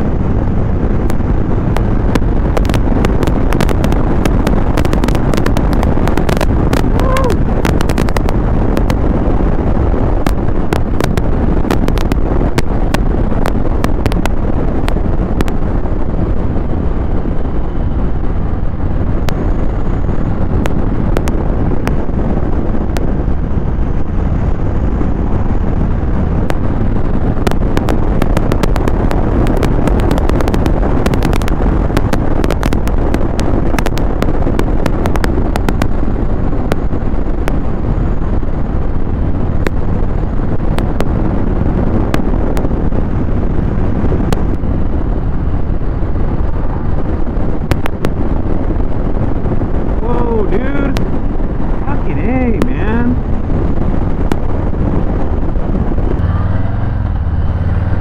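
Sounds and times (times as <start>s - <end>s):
crackling pops from wind on mic: 0.0s - 58.0s
motorcycle engine cruising: 0.0s - 58.0s
wind buffeting on microphone: 0.0s - 58.0s.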